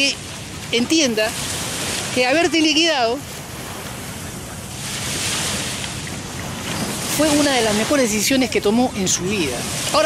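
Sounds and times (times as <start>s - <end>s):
ocean surf breaking on beach: 0.0s - 10.0s
wind rumbling on microphone: 0.0s - 10.0s.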